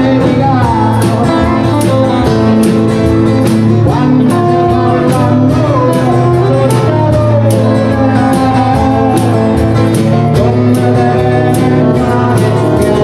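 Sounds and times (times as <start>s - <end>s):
acoustic guitar: 0.0s - 13.0s
electric guitar: 0.0s - 13.0s.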